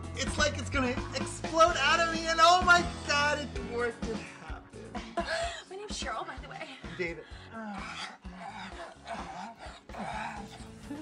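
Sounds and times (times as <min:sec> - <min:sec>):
man grunting and moaning: 0:07.4 - 0:11.0.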